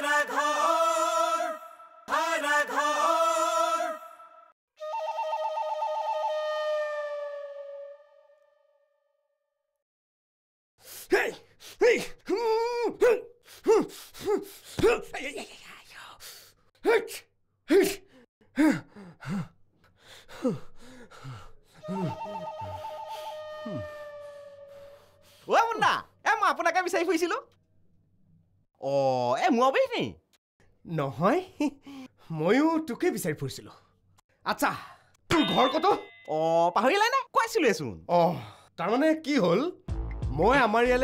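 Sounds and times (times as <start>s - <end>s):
man grunting and gasping: 10.9s - 15.1s, 17.7s - 19.6s, 20.2s - 22.2s.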